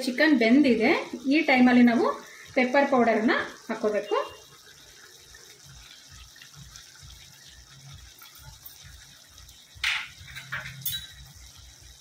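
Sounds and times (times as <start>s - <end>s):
faint sizzle: 0.0s - 12.0s
gravy bubbling in a pan: 0.0s - 12.0s.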